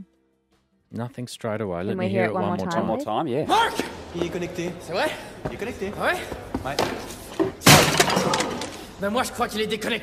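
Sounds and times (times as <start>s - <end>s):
laptop slammed on table: 7.6s - 8.6s.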